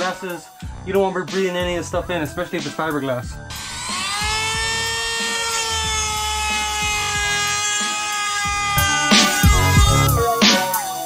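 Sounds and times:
background music with a beat: 0:00.0 - 0:11.0
rotary tool high whine: 0:03.4 - 0:10.4.

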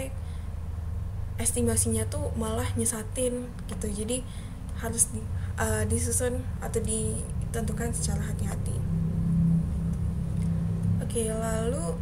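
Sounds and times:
faint hum: 0:00.0 - 0:12.0
low rumble: 0:00.0 - 0:12.0.

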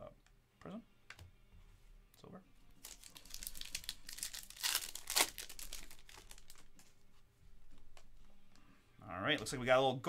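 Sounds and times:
foil wrapper tearing and crinkling: 0:02.8 - 0:06.7.

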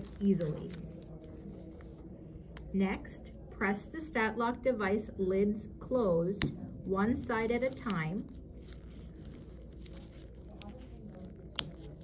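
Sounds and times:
gloved fingers handling noise: 0:00.0 - 0:02.7, 0:07.3 - 0:12.0.

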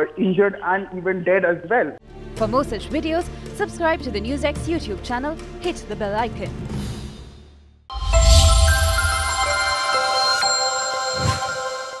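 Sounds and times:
whoosh: 0:07.9 - 0:10.0
electronic bell-like chord: 0:07.9 - 0:12.0
low swell: 0:07.9 - 0:12.0.

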